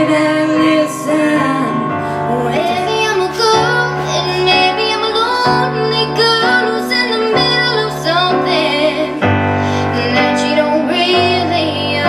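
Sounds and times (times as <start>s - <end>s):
digital piano chords: 0.0s - 12.0s
woman singing slow melody: 0.0s - 12.0s.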